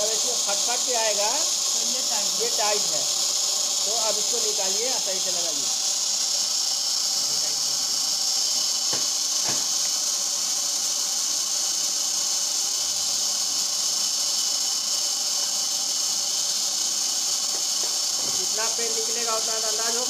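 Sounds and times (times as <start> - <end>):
machine running with high hiss: 0.0 - 20.0.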